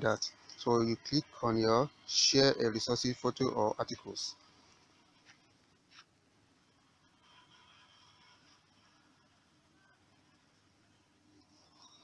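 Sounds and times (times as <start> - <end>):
faint scratchy noises: 0.0 - 12.0.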